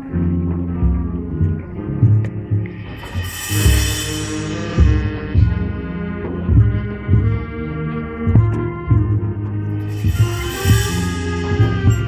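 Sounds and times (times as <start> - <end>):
low brass chords: 0.0 - 12.0
deep drum hits: 2.9 - 5.8.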